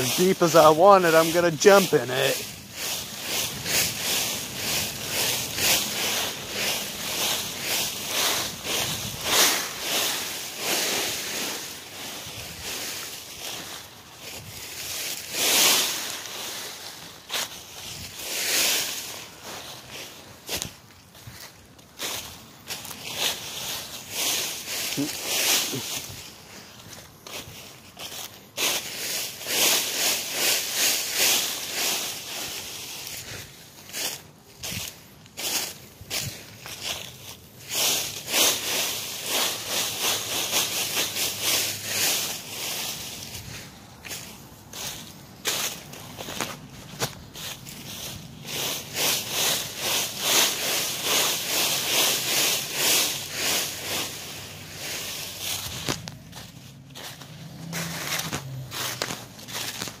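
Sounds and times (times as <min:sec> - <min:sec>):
dry leaves rustling and crunching: 0:00.0 - 1:00.0
footsteps in leaves: 0:00.0 - 1:00.0.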